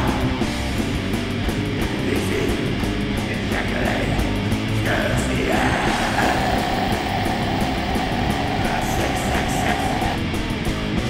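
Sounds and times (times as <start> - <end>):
death metal band playing: 0.0 - 11.0
held high guitar note: 5.9 - 10.2.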